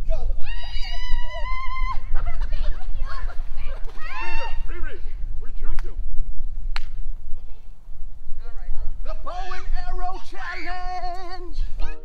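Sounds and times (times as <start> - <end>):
people shrieking and laughing: 0.4 - 4.7.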